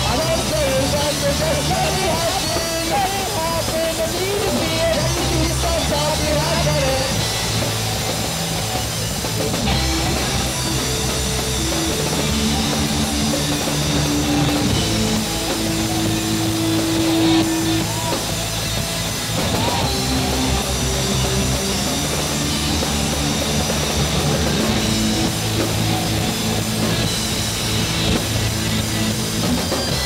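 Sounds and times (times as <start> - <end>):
live rock band playing: 0.0 - 30.0.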